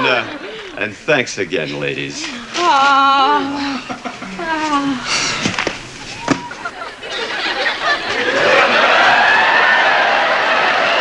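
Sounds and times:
audience cheering and whooping: 0:06.1 - 0:11.0.

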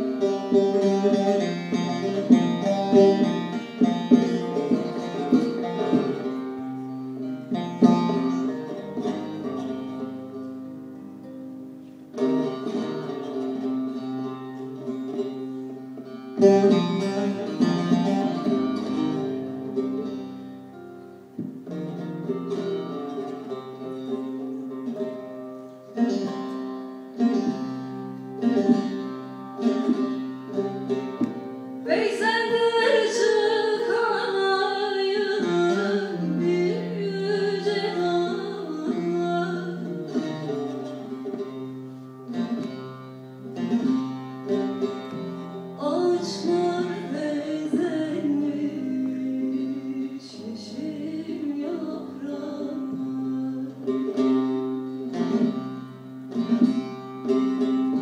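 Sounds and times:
plucked long-necked lutes playing: 0:00.0 - 0:58.0
woman singing: 0:31.8 - 0:40.0, 0:45.8 - 0:54.1.

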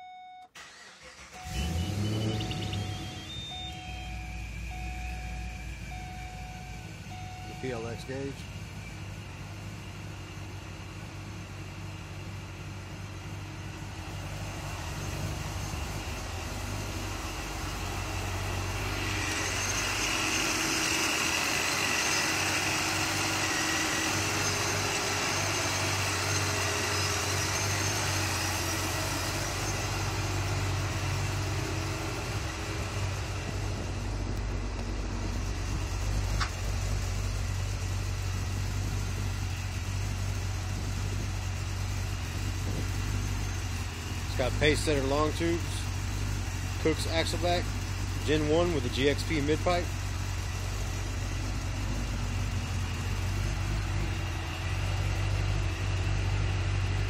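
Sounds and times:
car engine idling: 0:00.6 - 0:57.0.

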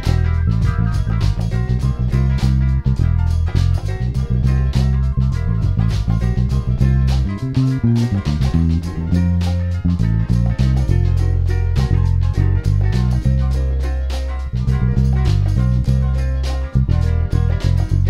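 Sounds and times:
electric bass played finger-style: 0:00.0 - 0:18.0
soul music with drum kit: 0:00.0 - 0:18.0.

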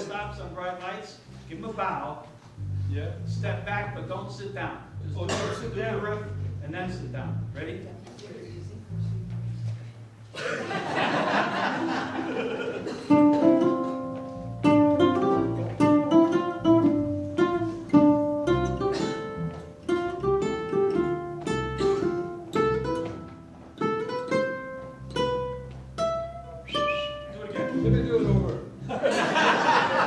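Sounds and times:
ukulele plucked melody: 0:12.0 - 0:29.0
ukulele strummed chords: 0:12.0 - 0:29.2.

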